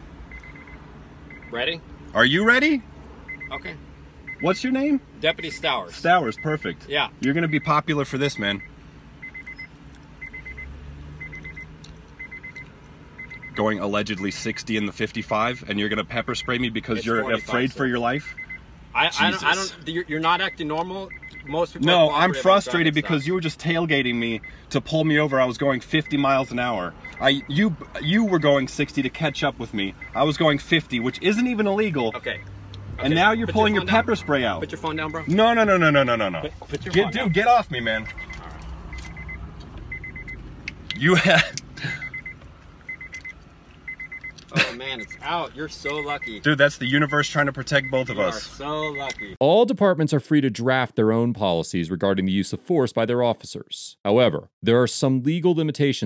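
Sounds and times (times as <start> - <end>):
car warning chime beeping: 0.2 - 49.4.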